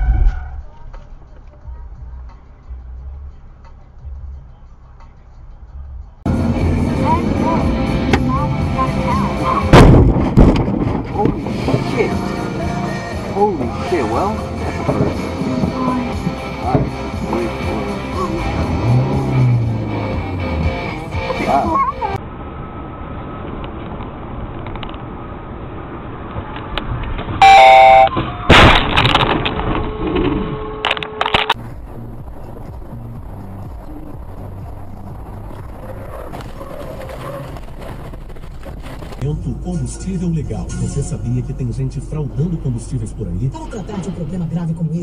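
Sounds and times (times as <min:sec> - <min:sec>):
road and engine rumble: 0:00.0 - 0:45.0
loud crash of impact: 0:09.7 - 0:11.4, 0:28.5 - 0:30.0
car collision bang: 0:09.7 - 0:11.9, 0:27.4 - 0:30.0
car horn blaring: 0:27.4 - 0:28.2.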